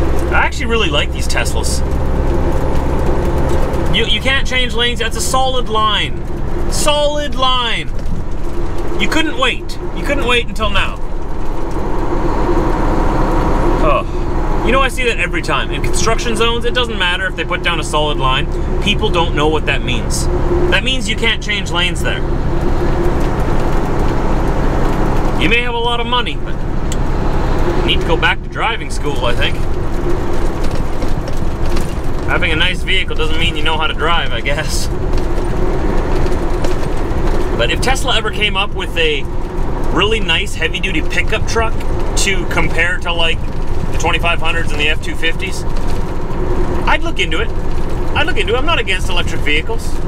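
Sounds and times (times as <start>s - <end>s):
truck engine and tyres droning: 0.0s - 50.0s.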